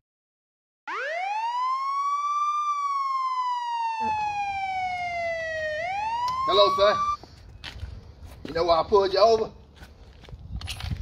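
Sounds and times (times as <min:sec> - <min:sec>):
police siren wailing: 0:00.9 - 0:07.2.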